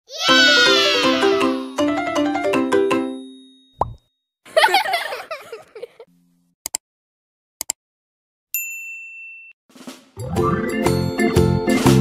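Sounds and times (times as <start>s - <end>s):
children's intro jingle: 0.2s - 3.0s
rising pop sound effect: 3.8s - 4.0s.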